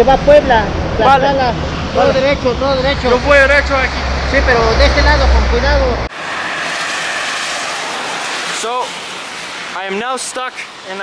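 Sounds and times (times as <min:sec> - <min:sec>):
person speaking: 0:00.0 - 0:06.1
highway traffic rushing past: 0:00.0 - 0:11.0.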